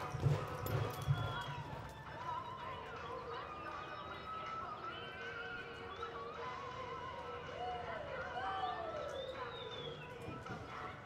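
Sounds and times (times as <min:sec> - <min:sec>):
horse hoofbeats on sand: 0:00.0 - 0:02.4.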